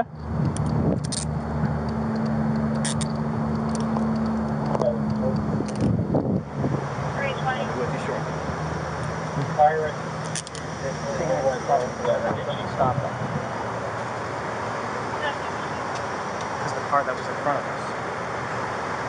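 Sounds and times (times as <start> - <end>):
vehicle engine idling: 0.0 - 19.0
handcuffs clicking: 0.6 - 1.3, 2.2 - 4.4, 10.3 - 10.6.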